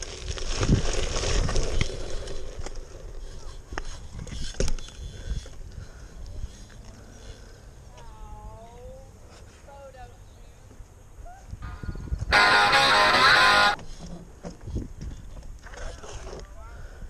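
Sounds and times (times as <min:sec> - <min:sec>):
bike tyres rolling over gravel: 0:00.0 - 0:04.5
wind on microphone: 0:11.5 - 0:12.6.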